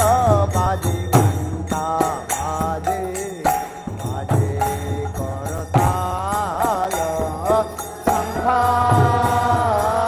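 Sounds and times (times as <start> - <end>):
drums beating steady rhythm: 0.0 - 10.0.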